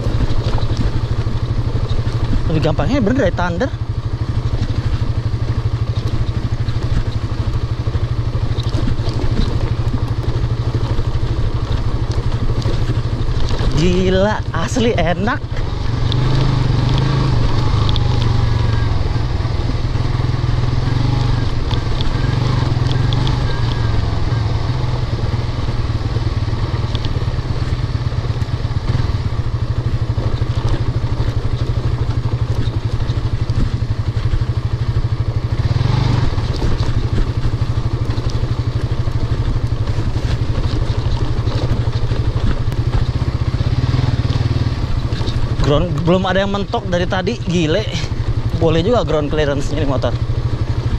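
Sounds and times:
knocks and rattles over bumps: 0:00.0 - 0:50.9
motorcycle engine running: 0:00.0 - 0:50.9.

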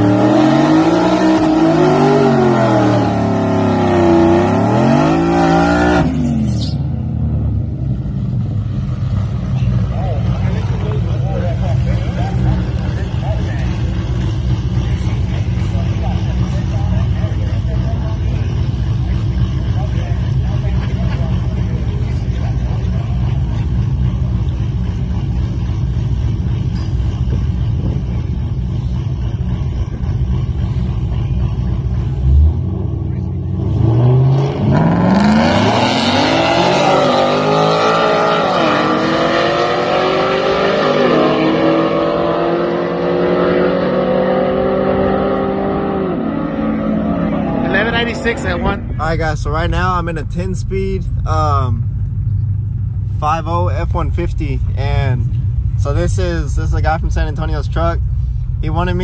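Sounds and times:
truck engine revving through gears: 0:00.0 - 0:59.0
pickup truck engine running: 0:07.0 - 0:33.5, 0:47.6 - 0:59.0.

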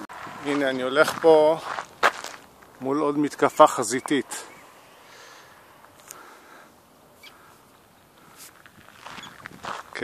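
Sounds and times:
footsteps on gravel: 0:00.4 - 0:04.5, 0:08.2 - 0:10.0
terns calling overhead: 0:03.3 - 0:08.5.

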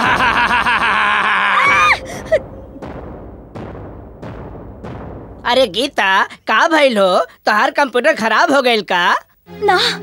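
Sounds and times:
woman screaming: 0:01.4 - 0:02.4
woman gasping: 0:01.9 - 0:02.5.

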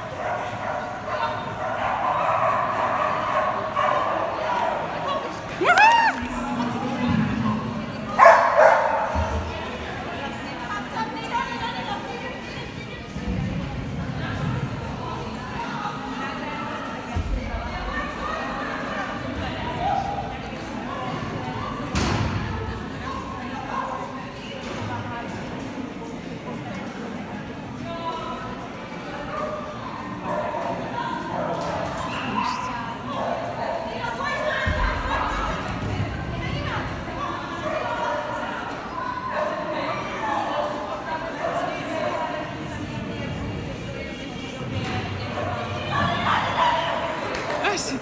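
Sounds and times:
dog barking: 0:00.2 - 0:04.9, 0:08.2 - 0:09.2
people talking: 0:30.3 - 0:48.0.

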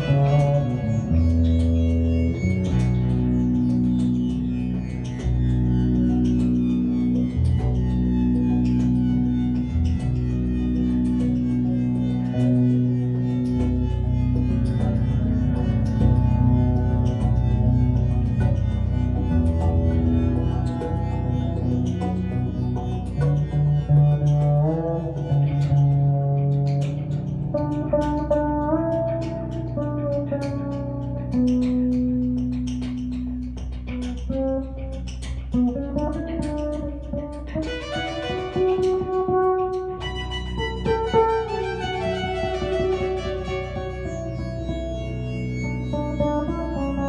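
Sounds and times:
electric bass guitar melody: 0:00.0 - 0:47.0.

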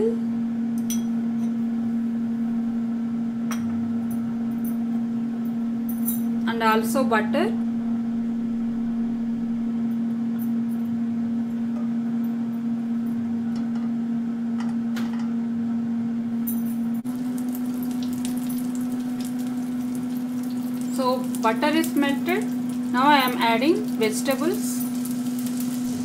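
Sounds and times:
steady low hum: 0:00.0 - 0:26.0
butter sizzling in frying pan: 0:17.1 - 0:26.0.

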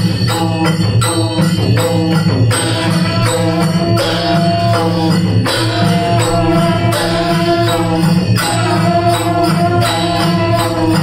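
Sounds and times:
small hand cymbals: 0:00.0 - 0:11.0
barrel drum beating: 0:01.0 - 0:11.0.

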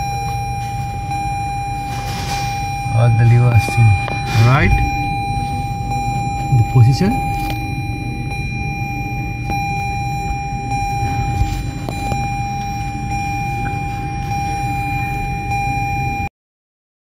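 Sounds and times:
high-pitched electronic tone: 0:00.0 - 0:16.3
low hum: 0:00.0 - 0:16.3.

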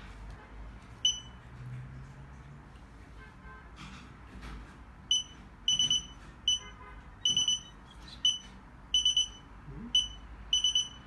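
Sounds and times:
fingerprint reader beeping: 0:01.0 - 0:01.4, 0:05.1 - 0:11.0.

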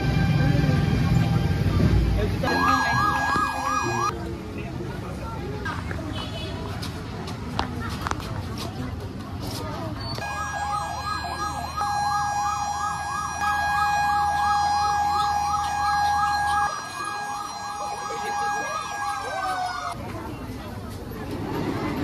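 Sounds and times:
warbling siren: 0:02.4 - 0:04.1, 0:10.2 - 0:20.0.

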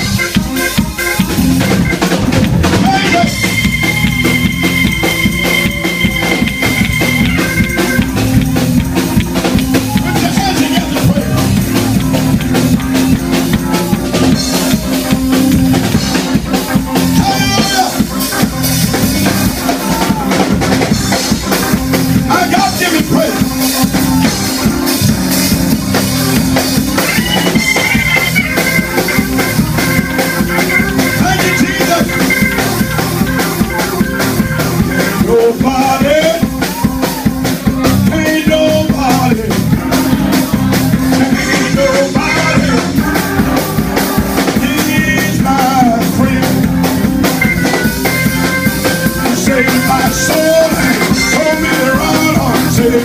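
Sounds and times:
bass line: 0:00.0 - 0:53.0
drum kit beat: 0:00.0 - 0:53.0.

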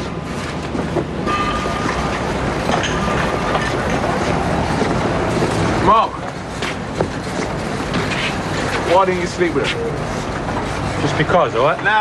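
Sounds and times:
traffic noise: 0:00.0 - 0:12.0.

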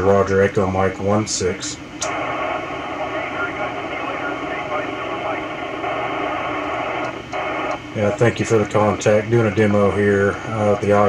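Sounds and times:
radio hiss: 0:01.0 - 0:11.0
faint voice over radio: 0:02.8 - 0:06.2.

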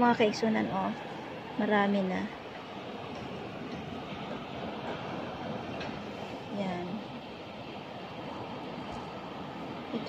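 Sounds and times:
sea surf: 0:00.0 - 0:10.0
wind: 0:00.0 - 0:10.0.

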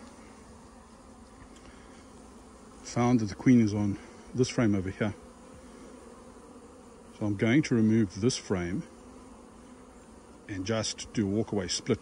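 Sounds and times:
honey bees humming: 0:00.0 - 0:12.0.

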